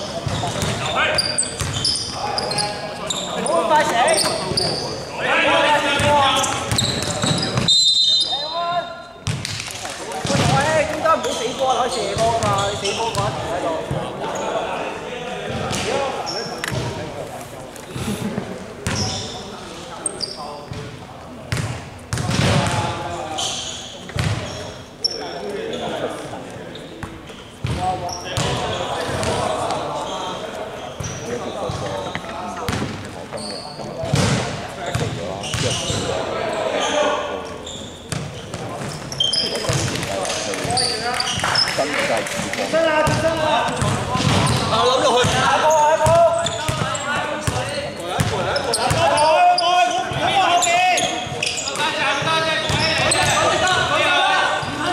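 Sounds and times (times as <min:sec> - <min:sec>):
players' voices echoing: 0:00.0 - 0:54.9.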